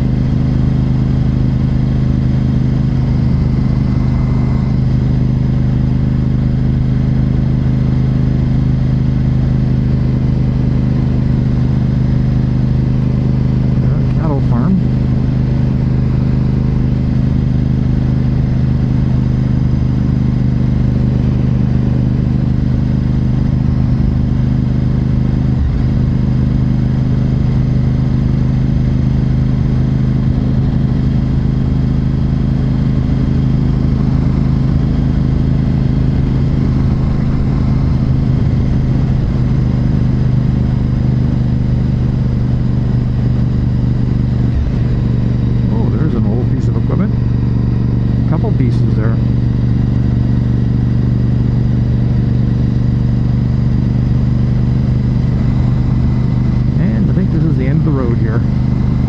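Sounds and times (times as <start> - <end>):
motorcycle engine cruising: 0.0 - 59.0.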